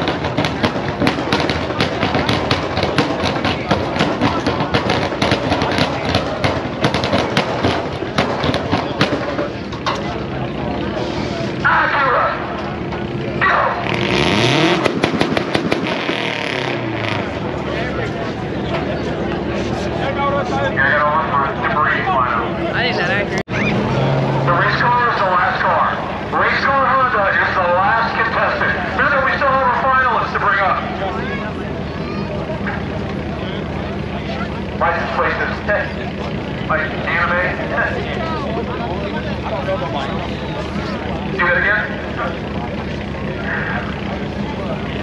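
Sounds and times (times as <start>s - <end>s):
loud crowd chatter: 0.0s - 45.0s
race car engines revving: 0.0s - 45.0s.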